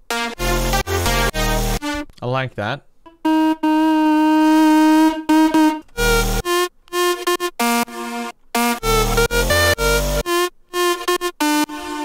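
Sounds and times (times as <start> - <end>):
synthesizer music: 0.0 - 2.0, 3.1 - 12.0.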